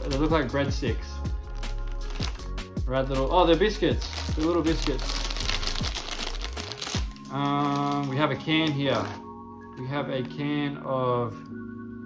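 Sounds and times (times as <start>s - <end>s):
plastic bag crinkling: 0.0s - 0.4s, 1.4s - 2.5s, 3.9s - 9.2s.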